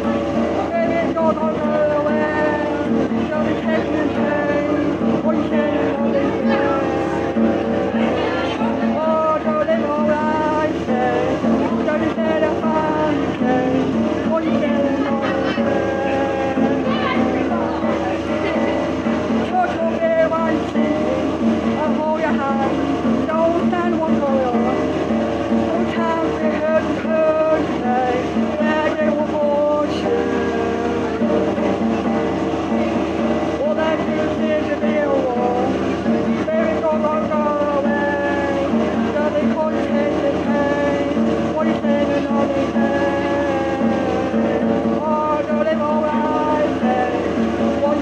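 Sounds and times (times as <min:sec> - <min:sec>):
acoustic guitar strumming: 0:00.0 - 0:48.0
man singing: 0:00.0 - 0:48.0.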